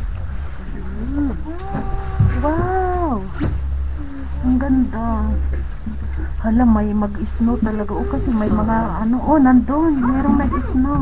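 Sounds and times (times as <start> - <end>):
low rumble in cabin: 0.0 - 11.0.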